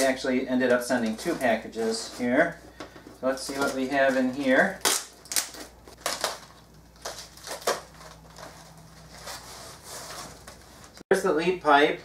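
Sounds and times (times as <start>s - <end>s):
packing wrap crinkling: 0.0s - 11.0s.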